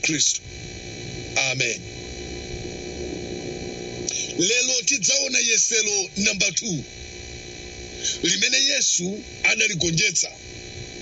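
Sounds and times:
low hum and rumble: 0:00.0 - 0:11.0.

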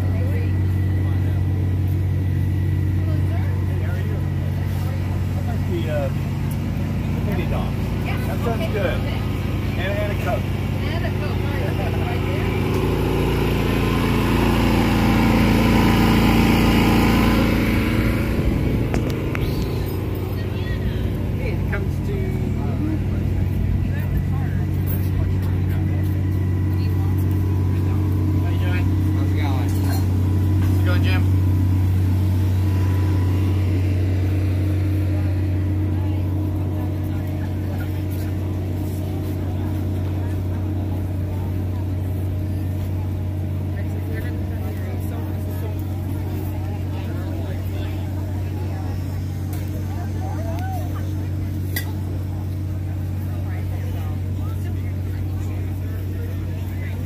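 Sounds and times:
engine humming: 0:00.0 - 0:57.0
people talking: 0:00.0 - 0:57.0.

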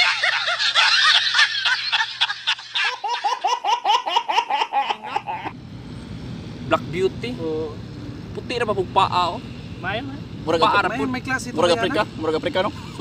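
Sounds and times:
loud hearty laughter: 0:00.0 - 0:05.5.

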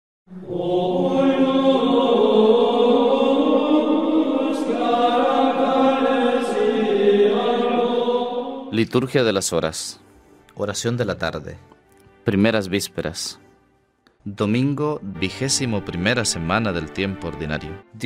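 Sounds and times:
choir chanting slow held notes: 0:00.3 - 0:08.8.

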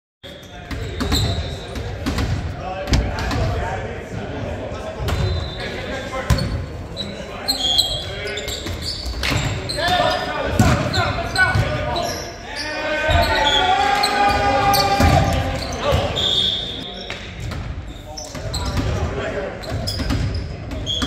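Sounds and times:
volleyball hits echoing: 0:09.2 - 0:11.9, 0:14.6 - 0:16.2
players shouting calls: 0:09.4 - 0:17.0.

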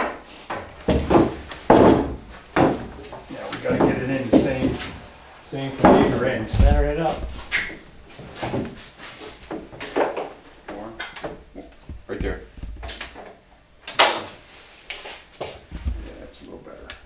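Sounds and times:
wooden boards knocking: 0:00.0 - 0:05.1, 0:05.7 - 0:07.8, 0:11.1 - 0:14.3.

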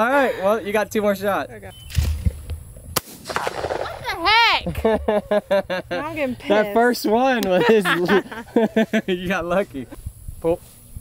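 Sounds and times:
shotgun shot: 0:03.0 - 0:04.2.

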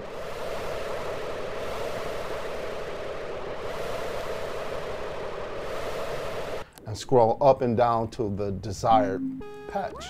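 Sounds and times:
synthesizer noise-like held note: 0:08.9 - 0:10.0.

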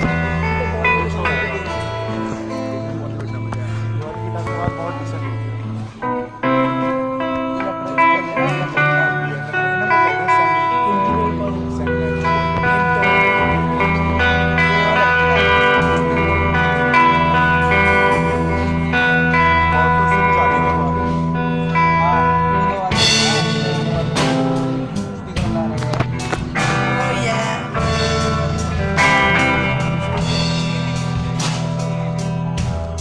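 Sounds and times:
acoustic and electric guitars: 0:00.0 - 0:33.0.

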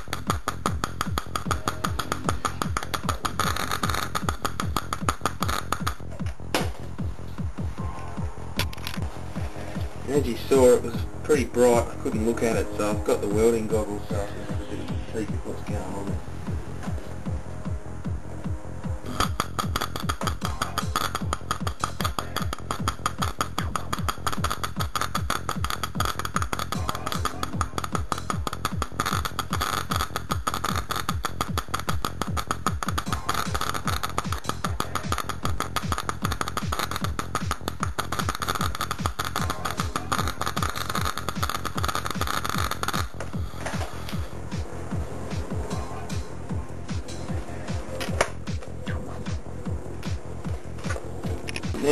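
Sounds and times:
electric arc crackling buzz: 0:00.0 - 0:07.4, 0:08.5 - 0:47.3.

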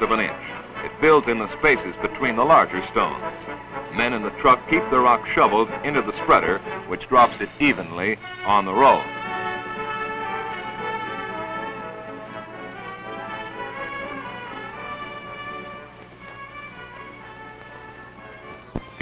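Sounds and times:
orchestral background music: 0:00.0 - 0:19.0.

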